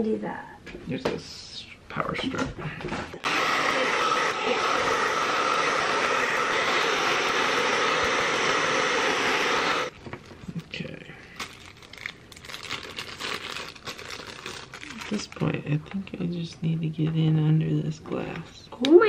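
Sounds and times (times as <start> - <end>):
hair dryer blowing: 3.2 - 9.9
plastic bag crinkling: 9.9 - 15.6.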